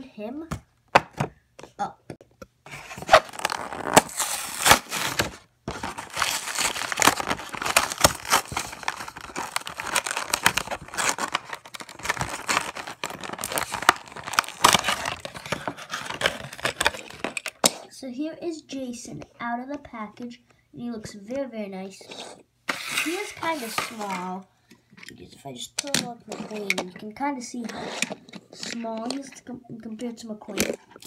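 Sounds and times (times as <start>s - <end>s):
cardboard tearing: 2.7s - 17.8s, 22.7s - 24.4s
plastic blister pack crinkling: 2.7s - 17.8s.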